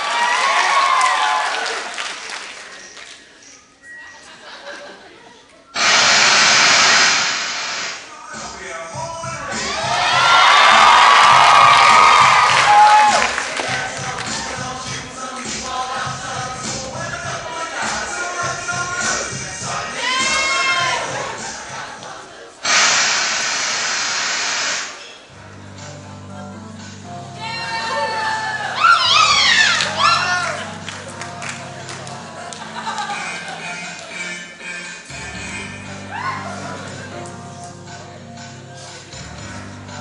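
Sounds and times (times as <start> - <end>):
loud white-noise static: 5.8 - 8.1, 22.6 - 25.0
rushing hiss sound effect: 5.8 - 8.1, 22.6 - 25.1.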